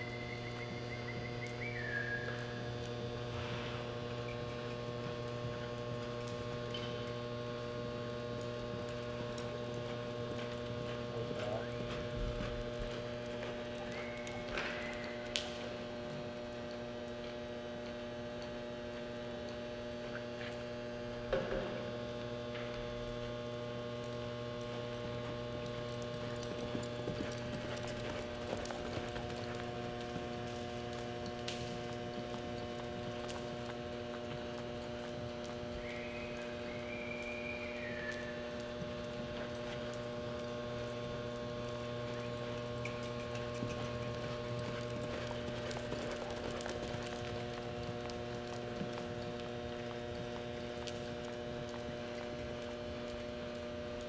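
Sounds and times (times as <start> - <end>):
electrical mains hum: 0.0 - 54.0
horse hoofbeats on dirt: 0.0 - 54.0.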